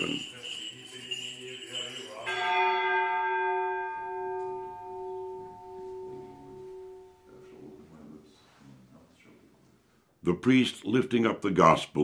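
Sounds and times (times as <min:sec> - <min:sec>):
bell ringing: 0:00.0 - 0:07.6.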